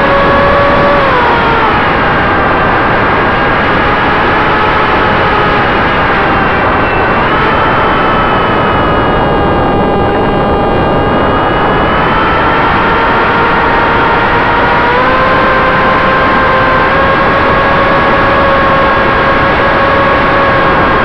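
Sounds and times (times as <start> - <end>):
electric motor and propeller whining: 0.0 - 21.0
wind rush on microphone: 0.0 - 21.0.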